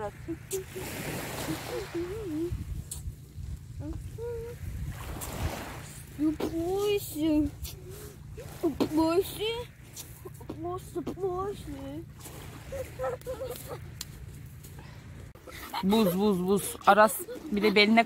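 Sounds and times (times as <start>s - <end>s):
steady low rumble: 2.0s - 17.7s
woman laughing: 10.1s - 10.8s, 12.6s - 14.0s, 15.4s - 18.0s.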